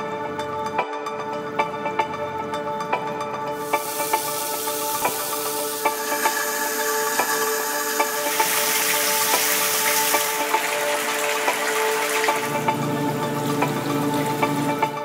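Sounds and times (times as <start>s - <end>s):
background music with steady beat: 0.0s - 15.0s
tap water running into basin: 3.6s - 15.0s.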